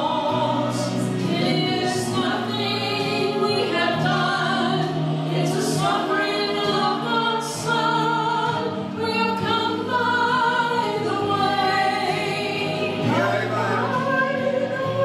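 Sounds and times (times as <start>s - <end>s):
women singing gospel song: 0.0s - 15.0s.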